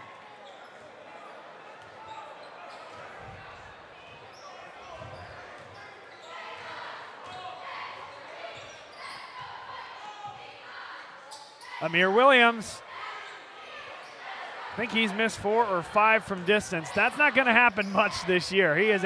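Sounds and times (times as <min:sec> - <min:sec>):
crowd chatter in gym: 0:00.0 - 0:19.0.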